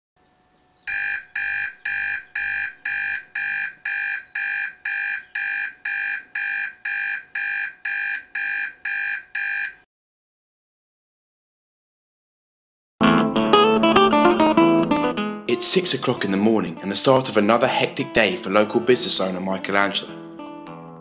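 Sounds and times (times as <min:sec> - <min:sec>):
alarm clock beeping: 0:00.9 - 0:09.8.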